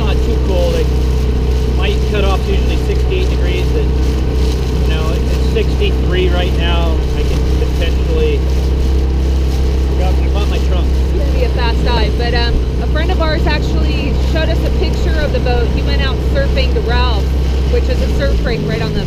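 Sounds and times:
outboard motor droning: 0:00.0 - 0:19.0
water rushing along hull: 0:00.0 - 0:19.0.

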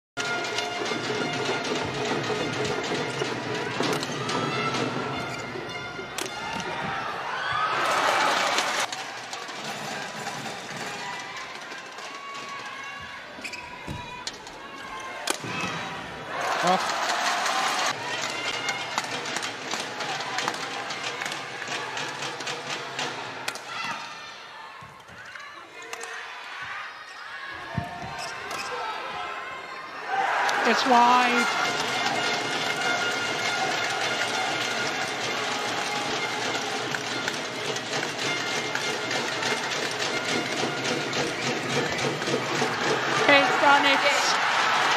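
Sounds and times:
crowd cheering: 0:00.2 - 0:44.9.

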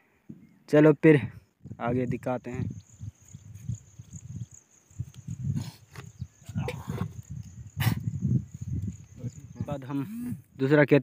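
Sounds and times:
wind buffeting microphone: 0:01.2 - 0:10.7.

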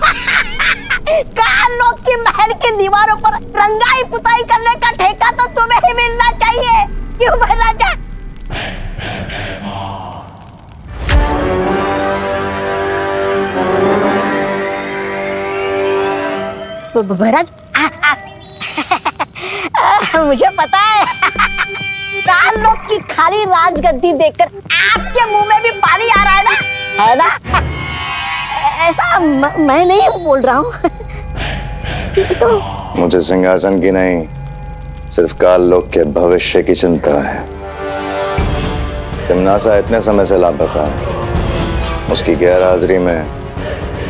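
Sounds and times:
background music drone: 0:00.0 - 0:44.0
breathy exhale: 0:08.5 - 0:10.7
person speaking: 0:32.2 - 0:33.3.

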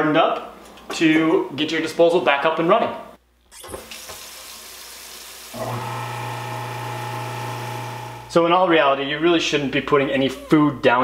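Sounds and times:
tap water running into sink: 0:03.6 - 0:07.8
garbage disposal motor humming: 0:05.5 - 0:08.4.

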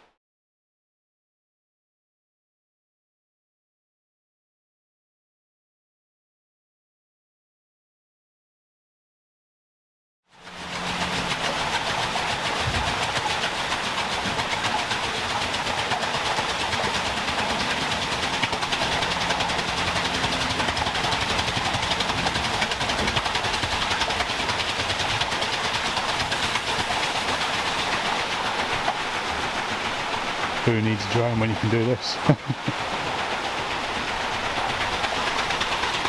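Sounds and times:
water rushing through wheel: 0:10.3 - 0:36.0.

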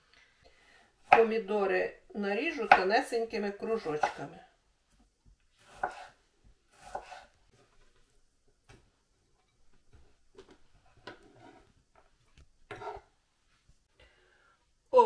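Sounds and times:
knife slicing on cutting board: 0:05.6 - 0:07.4, 0:12.7 - 0:13.1.

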